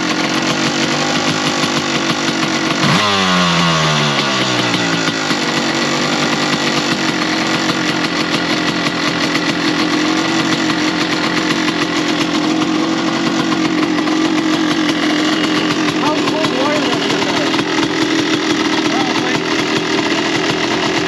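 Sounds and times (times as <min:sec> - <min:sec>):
dirt bike engine running: 0:00.0 - 0:21.0.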